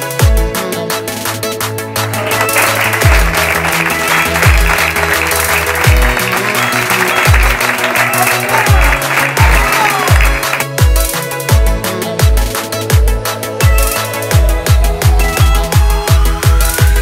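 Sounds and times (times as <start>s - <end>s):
electronic dance music: 0.0s - 17.0s
applause: 2.0s - 11.1s.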